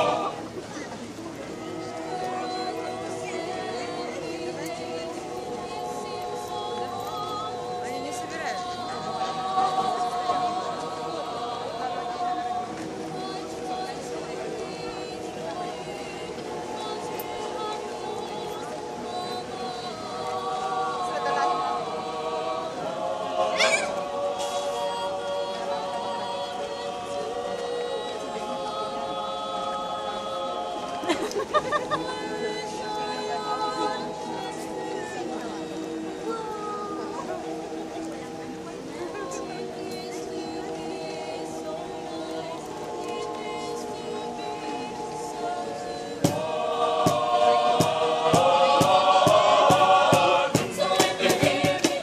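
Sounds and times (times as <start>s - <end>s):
mixed choir singing a cappella: 0.0s - 52.0s.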